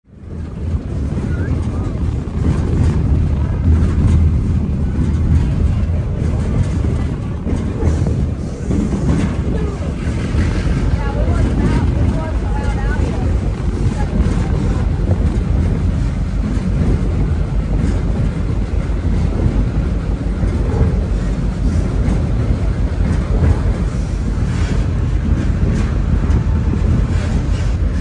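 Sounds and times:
train rumbling along track: 0.0s - 28.0s.

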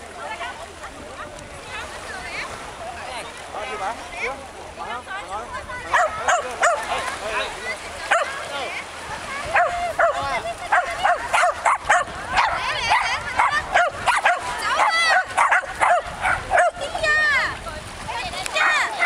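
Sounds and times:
dog barking and yipping: 5.9s - 6.8s, 9.6s - 16.8s.

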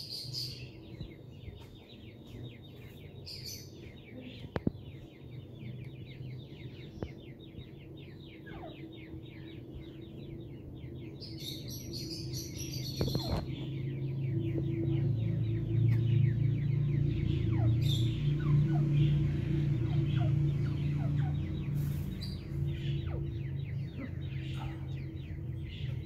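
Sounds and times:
bird chirping rapidly: 0.0s - 26.0s
low steady hum: 0.0s - 26.0s.

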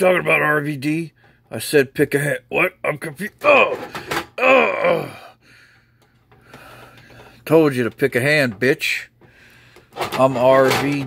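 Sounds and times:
man speaking: 0.0s - 3.8s, 7.4s - 9.2s, 10.2s - 11.0s
man gasping oh: 3.5s - 5.6s.

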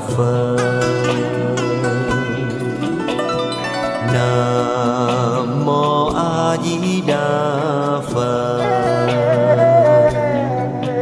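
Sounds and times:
person singing slow chant: 0.0s - 3.0s, 4.0s - 11.0s
sustained instrumental backing: 0.0s - 11.0s.

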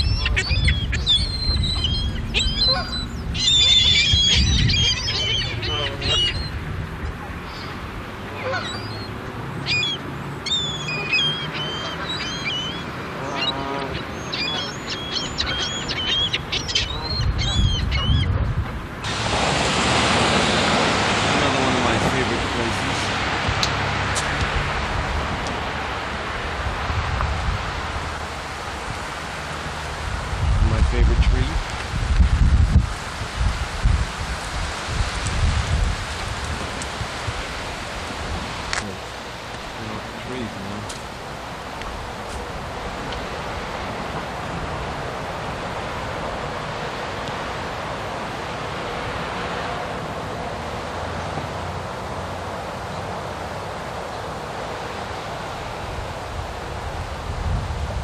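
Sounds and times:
geese honking: 0.0s - 6.5s, 8.3s - 9.1s, 9.7s - 18.3s
wind buffeting microphone: 0.0s - 8.2s, 16.7s - 39.0s, 55.6s - 58.0s
gulls calling: 0.0s - 23.8s.

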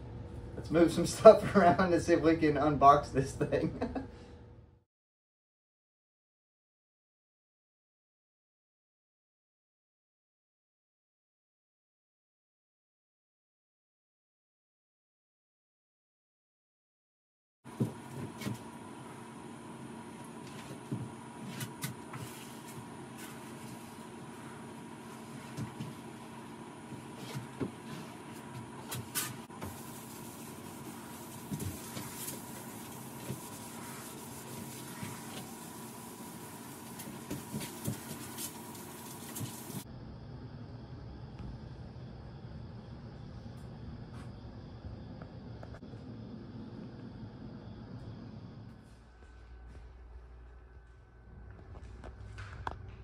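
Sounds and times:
shop equipment humming: 0.0s - 4.7s, 17.7s - 53.0s
rags wiping tabletop: 20.5s - 26.3s, 26.9s - 39.8s.

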